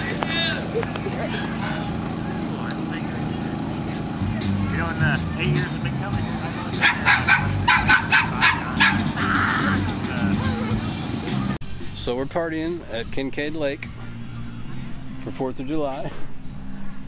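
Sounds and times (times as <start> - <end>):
dog yapping: 6.8 - 9.8.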